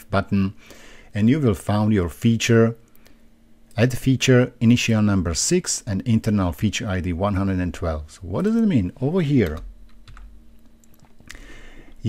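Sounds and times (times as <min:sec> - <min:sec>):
faint steady hum: 0:00.0 - 0:12.0
keyboard keystrokes: 0:09.4 - 0:11.2.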